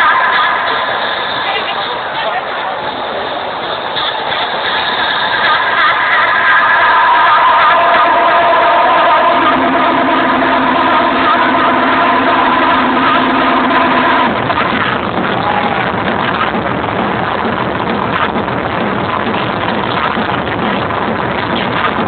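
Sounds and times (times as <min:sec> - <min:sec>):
dense crowd noise: 0:00.0 - 0:22.0
sustained synthesizer chord: 0:05.4 - 0:15.3
low held synth note: 0:05.6 - 0:16.6.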